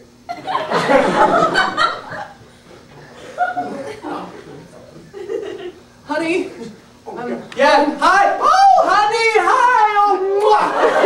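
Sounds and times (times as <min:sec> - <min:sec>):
audience laughter: 0:00.3 - 0:05.8, 0:10.6 - 0:11.0.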